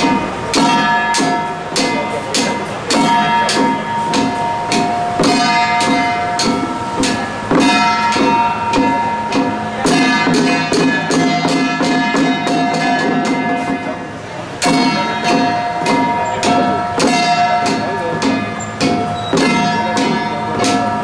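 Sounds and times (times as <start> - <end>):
handheld drums beaten fast: 0.0 - 21.0
sustained ringing tones: 0.0 - 21.0.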